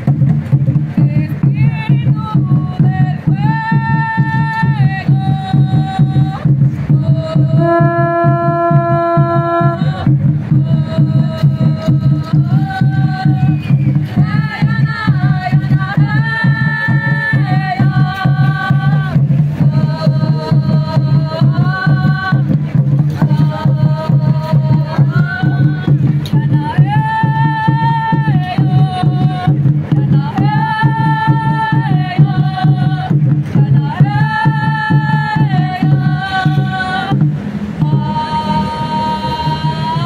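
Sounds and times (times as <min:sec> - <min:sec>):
hand drums beating: 0:00.0 - 0:38.2
voices singing a chant: 0:00.0 - 0:40.0
conch shell trumpet: 0:07.5 - 0:10.0.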